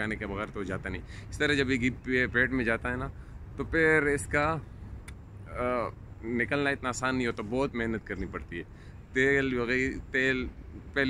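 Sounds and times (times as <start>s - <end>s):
man speaking: 0.0s - 4.7s, 5.4s - 11.0s.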